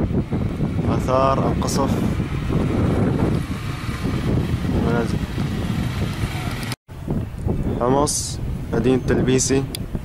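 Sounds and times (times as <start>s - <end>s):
wind buffeting microphone: 0.0s - 10.0s
man's voice: 0.9s - 2.2s, 4.7s - 5.2s.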